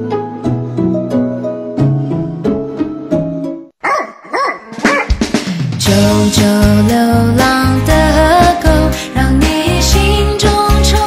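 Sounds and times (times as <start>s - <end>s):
dog barking: 3.8s - 5.2s.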